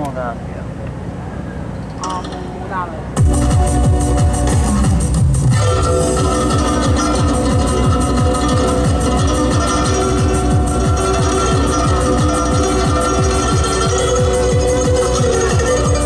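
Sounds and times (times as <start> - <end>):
sustained synth chords: 1.1 - 16.0
plucked zither: 1.8 - 16.0
fast bass drum beat: 3.2 - 15.8.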